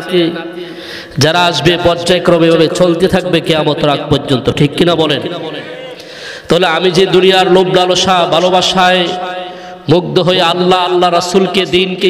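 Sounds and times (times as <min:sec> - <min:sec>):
man preaching in sung chant: 0:00.0 - 0:12.0.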